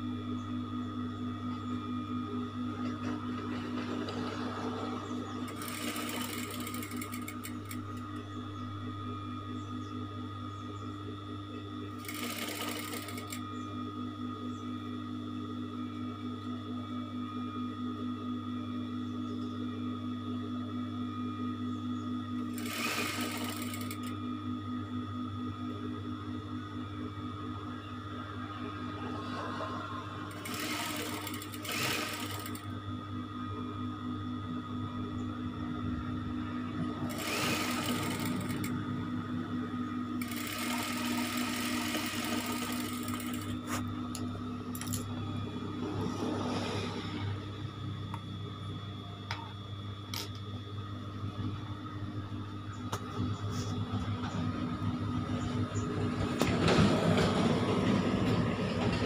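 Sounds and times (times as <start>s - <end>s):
sewing machine stitching: 5.5s - 8.0s, 12.0s - 13.4s, 22.5s - 24.1s, 30.3s - 32.6s, 37.0s - 38.8s, 40.2s - 43.8s.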